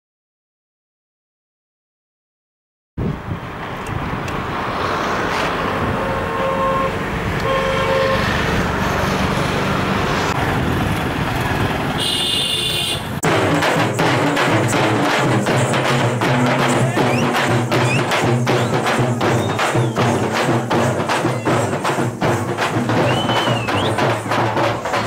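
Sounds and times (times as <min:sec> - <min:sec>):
street traffic noise: 0:03.0 - 0:25.0
vehicle horn toots: 0:06.0 - 0:08.4, 0:12.0 - 0:13.2
drum band beating rapid strokes: 0:13.2 - 0:25.0.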